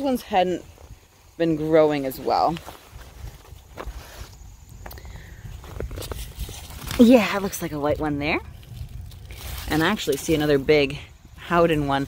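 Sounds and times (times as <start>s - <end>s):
footsteps rustling through leaves: 0.0s - 4.8s, 5.4s - 11.9s.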